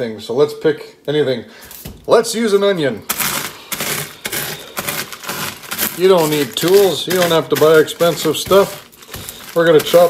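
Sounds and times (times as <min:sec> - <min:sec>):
pork rinds crunching in plastic bag: 0:03.0 - 0:10.0.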